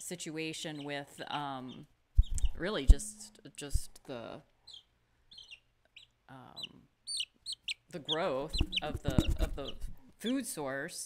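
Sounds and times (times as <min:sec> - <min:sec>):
chick peeping: 0:00.6 - 0:04.0, 0:04.6 - 0:10.4.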